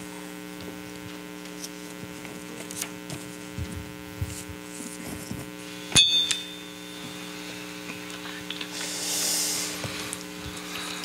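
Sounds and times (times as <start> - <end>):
steady hum: 0.0 - 11.0
sharp metallic strike ringing: 5.9 - 7.2.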